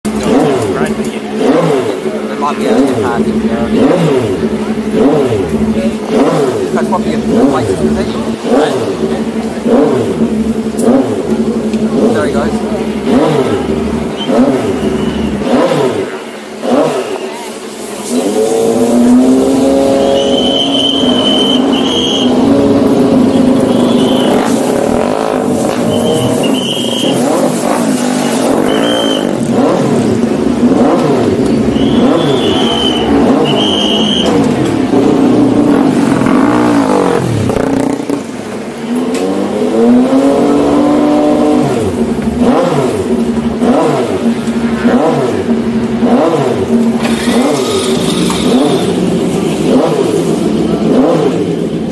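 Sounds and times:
motorcycle engines revving: 0:00.0 - 0:51.9.

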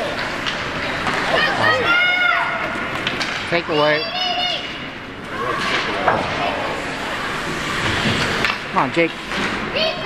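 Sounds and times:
hockey stick and puck clacks: 0:00.1 - 0:01.3, 0:02.9 - 0:03.5, 0:07.8 - 0:08.6
children shouting: 0:01.3 - 0:02.8.

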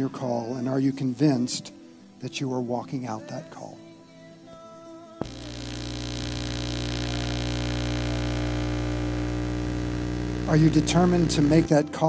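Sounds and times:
electrical hum and buzz: 0:05.2 - 0:12.0.

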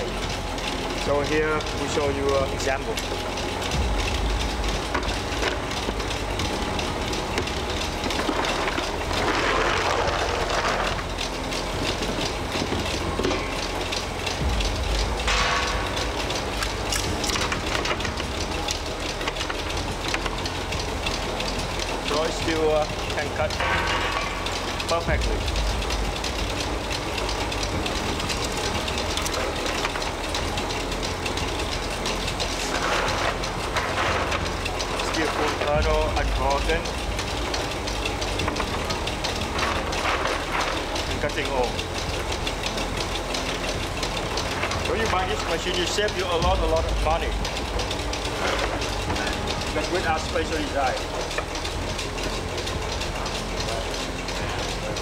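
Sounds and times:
low motor hum: 0:00.0 - 0:55.0
machine clicking and clattering: 0:00.0 - 0:55.0.

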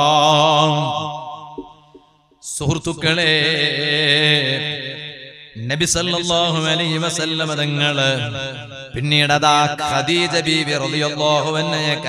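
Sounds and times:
man chanting melodically: 0:00.0 - 0:01.7, 0:02.4 - 0:12.0.

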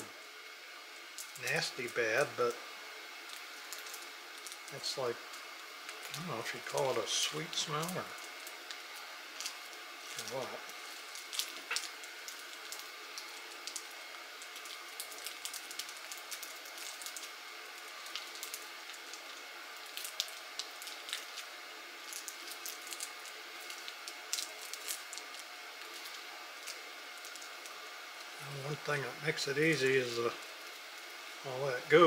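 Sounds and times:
faint steady hum: 0:00.0 - 0:32.0
sticky tape peeling crackles: 0:03.2 - 0:31.1.

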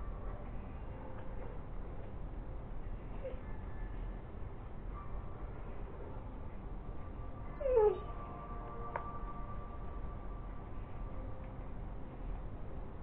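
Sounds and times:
low background hum: 0:00.0 - 0:13.0
dog whining: 0:07.6 - 0:08.1.

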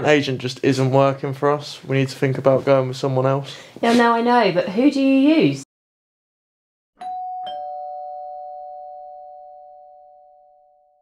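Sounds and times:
doorbell ding-dong chime: 0:07.0 - 0:11.0.

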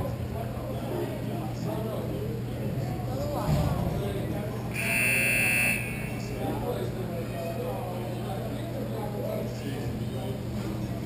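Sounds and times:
shrill signal tone: 0:04.8 - 0:06.4.

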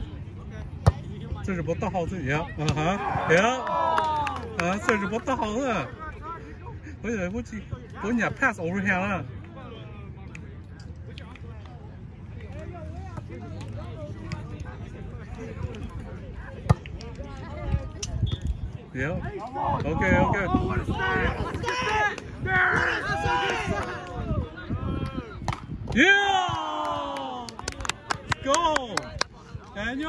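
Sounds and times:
people talking and calling out: 0:00.0 - 0:30.0.

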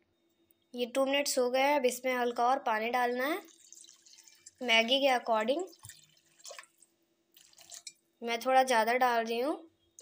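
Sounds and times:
water splashing and dripping: 0:03.3 - 0:08.0.

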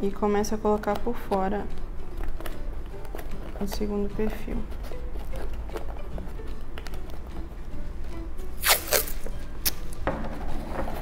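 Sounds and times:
background music: 0:00.0 - 0:11.0
masking tape ripping off roll: 0:08.6 - 0:10.0
tape tearing snap: 0:08.6 - 0:10.0.

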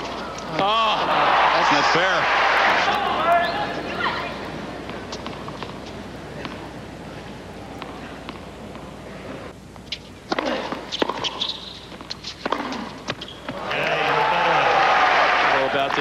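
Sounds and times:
crowd noise: 0:00.0 - 0:05.4, 0:13.5 - 0:16.0
crowd cheering and applause: 0:00.8 - 0:03.2, 0:13.6 - 0:16.0
racket hitting ball: 0:10.3 - 0:13.2.

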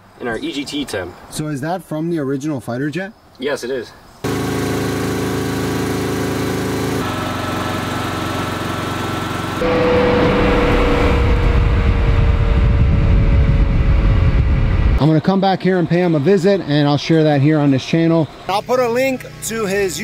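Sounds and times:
turbojet engine whine and roar: 0:09.2 - 0:16.7.

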